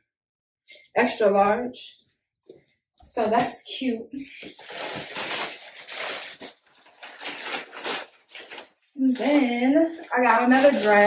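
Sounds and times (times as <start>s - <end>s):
plastic bag rustling: 4.3s - 11.0s.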